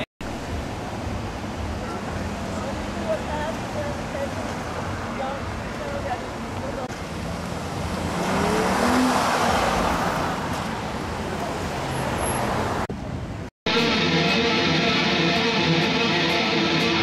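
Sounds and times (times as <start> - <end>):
street traffic noise: 0.0 - 17.0
car pulling away: 7.1 - 12.7.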